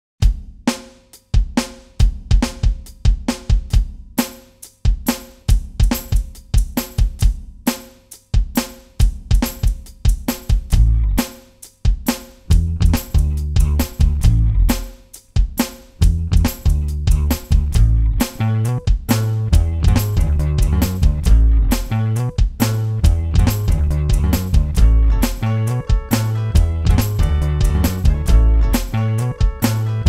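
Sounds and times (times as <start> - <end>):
drum beat: 0.2 - 30.0
deep bass line: 10.7 - 11.2, 12.5 - 14.9, 16.0 - 30.0.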